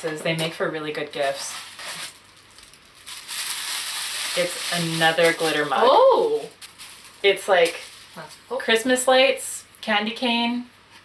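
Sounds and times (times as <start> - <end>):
tissue paper crinkling: 1.1 - 8.8.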